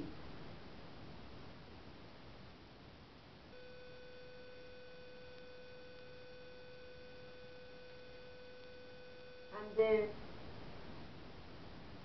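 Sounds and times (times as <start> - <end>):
faint background noise: 0.0 - 12.0
steady humming tone: 0.0 - 12.0.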